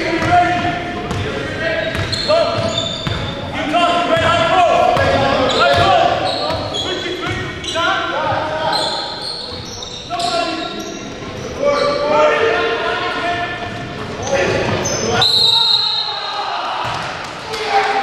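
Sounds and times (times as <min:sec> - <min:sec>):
sneakers squeaking on hardwood: 0:01.1 - 0:03.5, 0:04.1 - 0:12.0
basketball dribbling: 0:05.0 - 0:06.7.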